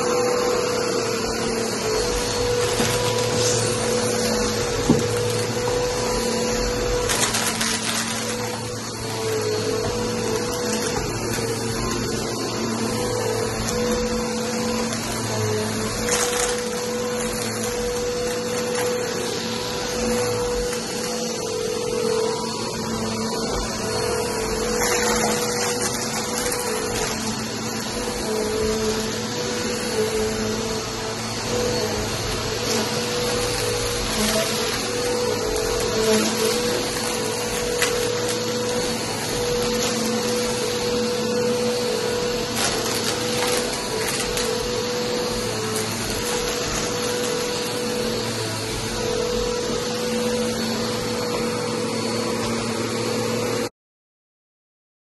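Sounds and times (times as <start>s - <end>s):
vacuum cleaner running: 0.0s - 53.7s.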